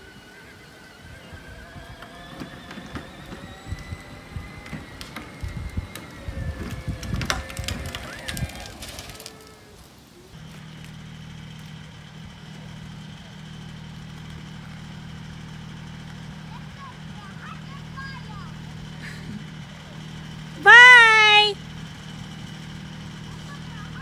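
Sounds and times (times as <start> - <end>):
riding mower engine running: 0.0 - 24.0
child calling out: 20.6 - 21.6.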